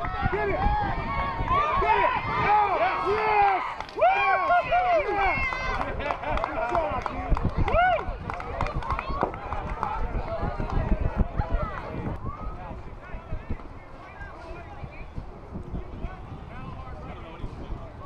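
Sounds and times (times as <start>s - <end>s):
children shouting and chattering: 7.1s - 15.1s.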